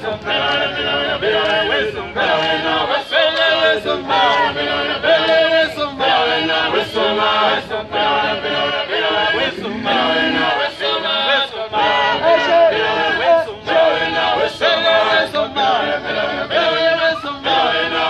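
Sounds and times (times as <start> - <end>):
group singing in chorus: 0.0 - 18.0
sharp ticks on the beat: 3.2 - 3.6.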